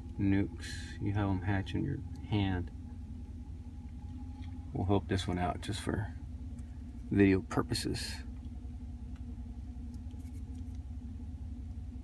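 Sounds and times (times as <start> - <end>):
low hum inside truck cab: 0.0 - 12.0.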